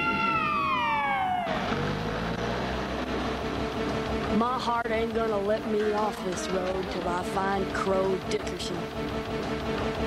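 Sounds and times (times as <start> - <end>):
motorcycle engine droning: 0.0 - 10.0.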